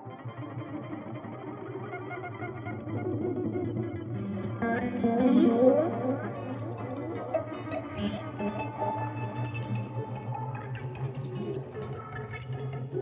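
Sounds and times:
distorted electric guitar: 0.0 - 13.0
sliding rising guitar notes: 0.0 - 13.0.

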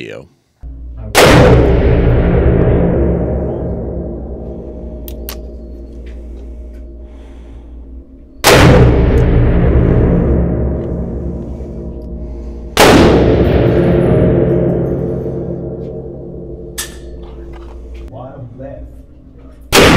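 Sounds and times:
revolver gunshots: 1.1 - 5.6, 8.4 - 15.8.

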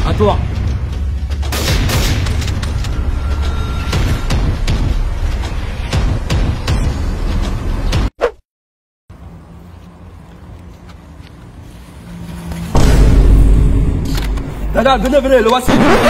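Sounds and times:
sharp gunshots: 1.5 - 2.6.

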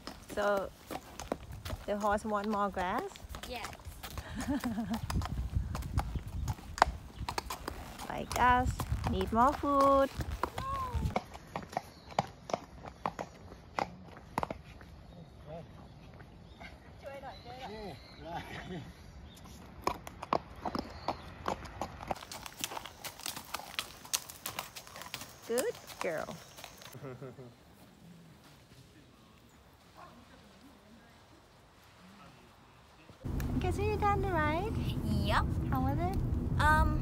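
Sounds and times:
horse hooves clip-clopping on asphalt: 0.0 - 15.0, 19.4 - 27.0, 33.2 - 37.0.

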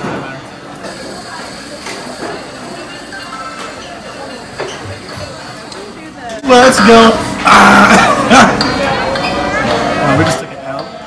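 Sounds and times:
diners chatting: 0.0 - 11.0.

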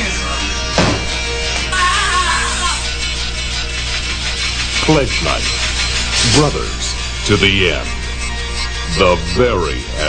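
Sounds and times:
horror film music: 0.0 - 10.0
low hum: 0.0 - 10.0
man speaking: 8.9 - 10.0.

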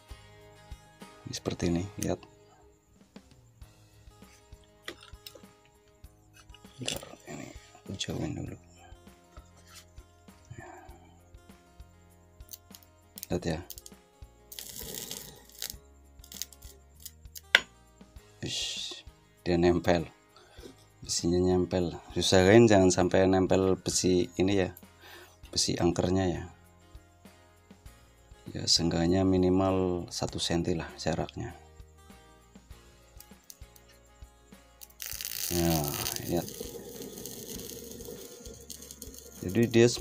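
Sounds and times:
faint music with held tones: 0.0 - 40.0
scraping crackling contact noise: 9.6 - 9.9, 35.0 - 39.7.

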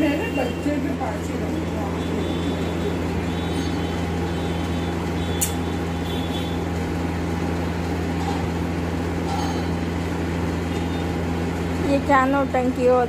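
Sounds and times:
low machine hum: 0.0 - 13.0
sharp click: 5.4 - 5.6.

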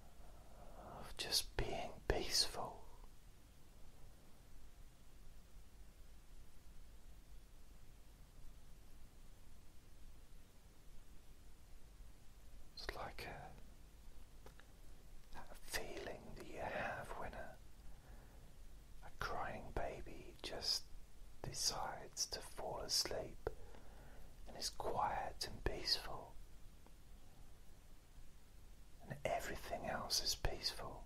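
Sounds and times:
man whispering: 0.4 - 3.1, 12.7 - 13.7, 15.3 - 17.6, 19.0 - 23.7, 24.4 - 26.4, 29.0 - 31.0.

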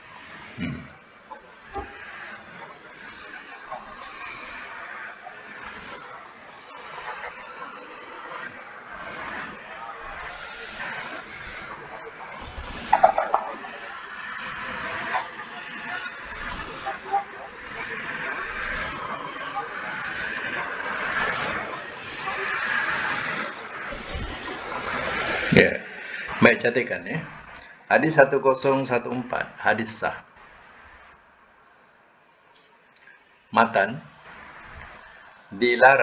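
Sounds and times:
steady line hiss: 0.0 - 36.0
garbled man's voice on video call: 0.6 - 0.9, 25.5 - 27.3, 27.9 - 30.2, 33.6 - 34.1, 35.5 - 36.0.

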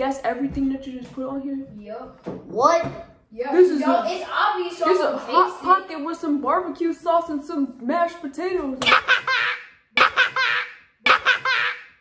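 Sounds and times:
girl laughing: 8.8 - 12.0.

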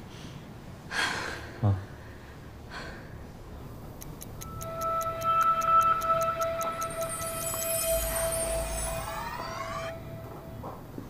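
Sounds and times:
held music note: 4.4 - 11.0
magical siren-like whine: 4.4 - 11.0.

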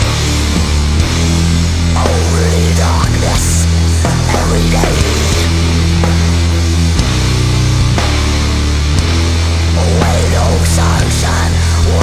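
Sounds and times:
distorted guitars and bass chords: 0.0 - 12.0.

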